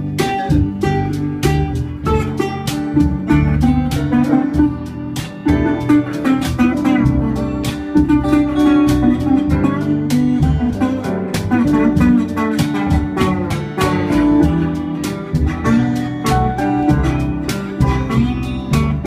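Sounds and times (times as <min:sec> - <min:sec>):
acoustic guitar strumming: 0:00.0 - 0:19.0
guitar playing sustained notes: 0:00.0 - 0:19.0.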